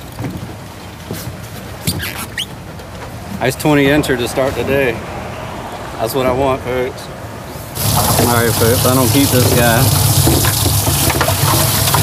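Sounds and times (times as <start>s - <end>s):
water gushing and splashing: 7.7s - 12.0s.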